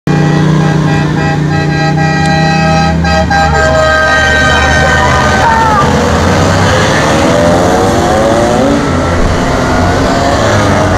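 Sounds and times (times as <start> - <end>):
loud sustained horn tones: 0.1 - 10.9
vehicle engines running: 0.1 - 10.9.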